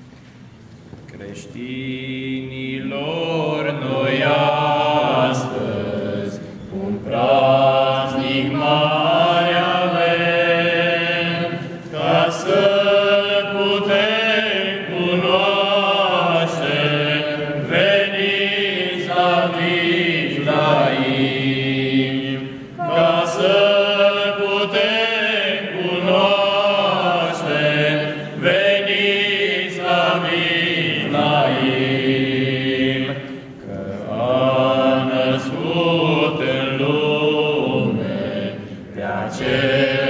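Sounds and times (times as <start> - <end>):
men singing a carol: 1.4 - 40.0.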